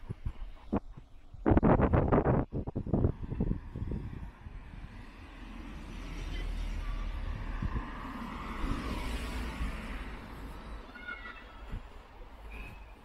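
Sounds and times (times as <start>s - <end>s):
low traffic rumble: 0.0s - 13.0s
car passing by: 2.9s - 13.0s.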